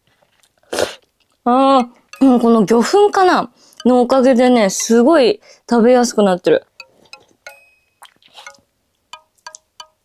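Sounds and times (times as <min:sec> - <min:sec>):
light chime tinkles: 0:01.8 - 0:04.2, 0:06.8 - 0:08.6.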